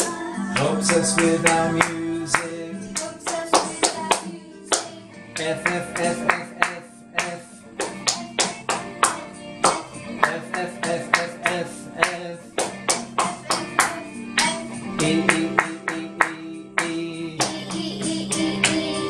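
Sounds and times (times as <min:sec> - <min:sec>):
music: 0:00.0 - 0:19.0
people clapping a rhythm: 0:00.0 - 0:19.0
voices singing along: 0:00.0 - 0:19.0.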